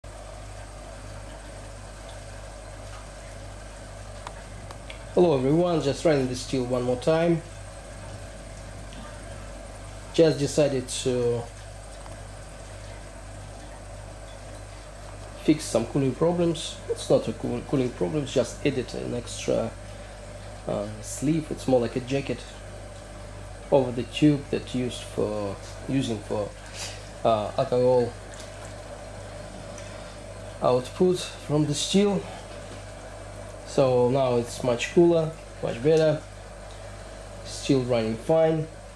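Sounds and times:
low mechanical hum: 0.0s - 38.9s
still boiling hiss: 0.0s - 38.9s
light even hiss: 26.6s - 27.3s.

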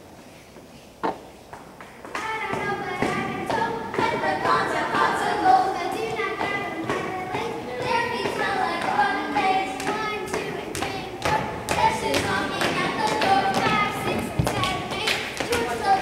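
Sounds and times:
children singing together: 2.2s - 16.0s.

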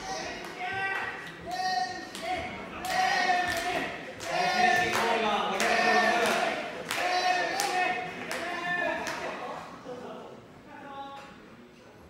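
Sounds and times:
spectators shouting: 0.0s - 9.0s.

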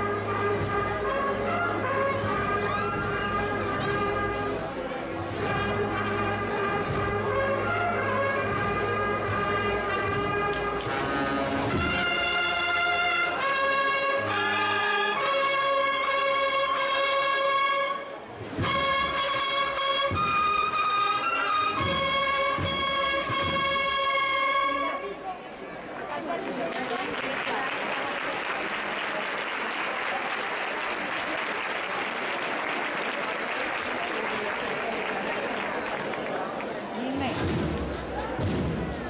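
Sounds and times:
cornet and drum band march: 0.0s - 24.8s, 37.2s - 39.0s.

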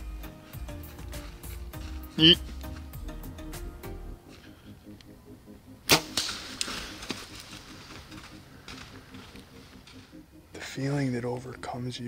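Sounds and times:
bowstring snap: 5.9s - 7.2s.

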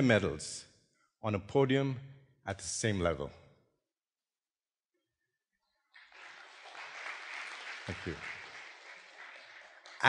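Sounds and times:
audience applauding: 5.9s - 10.0s.

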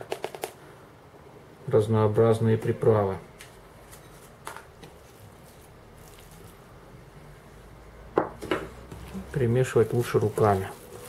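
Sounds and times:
hands working minced meat: 8.6s - 11.0s.

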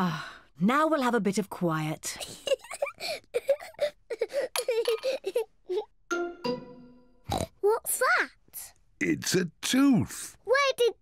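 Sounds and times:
cartoon pig snorting: 7.3s - 7.6s.

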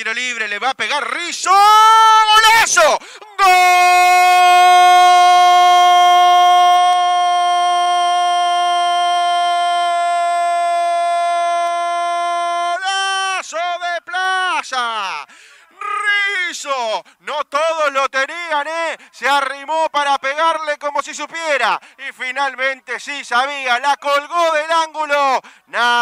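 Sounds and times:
commentator shouting goal: 0.1s - 11.3s, 12.4s - 26.0s.

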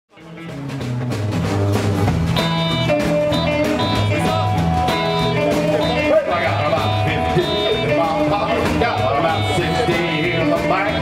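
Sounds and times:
rock and roll band playing: 0.1s - 11.0s.

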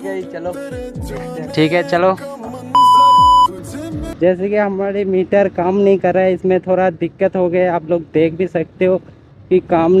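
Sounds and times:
music: 0.0s - 4.2s
high electronic beep: 2.8s - 3.5s.

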